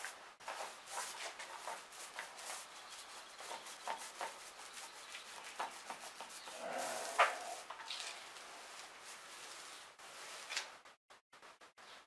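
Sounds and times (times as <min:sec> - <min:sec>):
paint roller rubbing strokes: 0:00.0 - 0:10.5.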